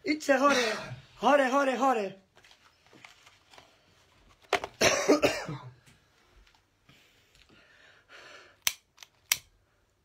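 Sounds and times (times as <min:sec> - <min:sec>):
man coughing: 0:00.4 - 0:01.0, 0:04.8 - 0:05.8.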